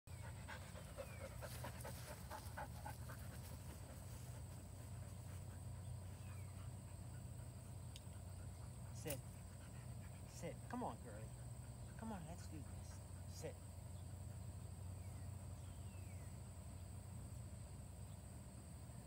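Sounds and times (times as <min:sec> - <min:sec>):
dog panting: 0:00.1 - 0:15.0.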